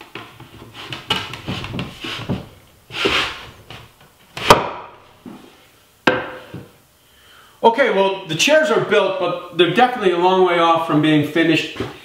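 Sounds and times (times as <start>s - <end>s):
wood rubbing against wood: 0.4s - 3.8s.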